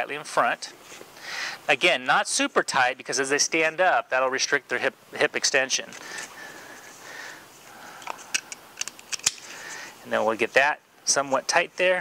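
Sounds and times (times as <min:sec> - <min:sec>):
buckle clicks: 0:08.0 - 0:09.5.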